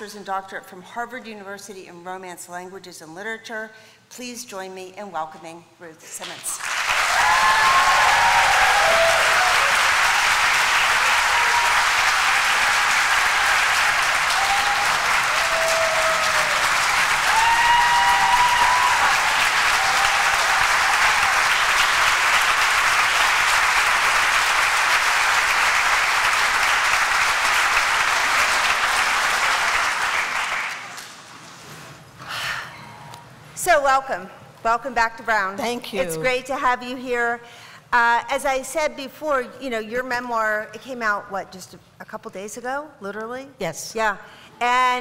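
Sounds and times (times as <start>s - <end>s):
large audience applauding: 6.6s - 31.2s.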